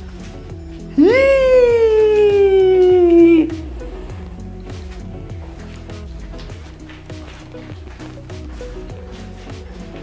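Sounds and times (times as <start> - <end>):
background music: 0.0 - 10.0
long wailing call: 1.0 - 4.1.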